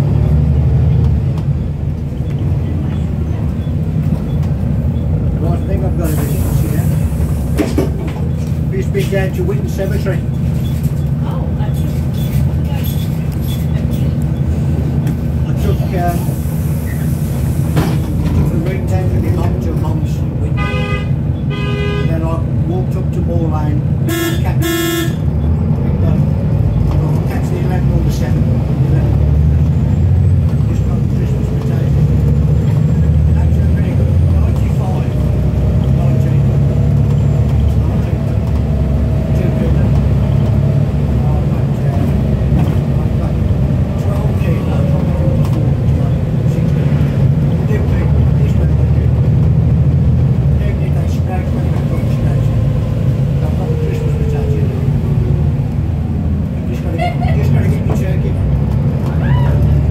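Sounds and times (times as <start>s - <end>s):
bus diesel engine drone: 0.0s - 59.9s.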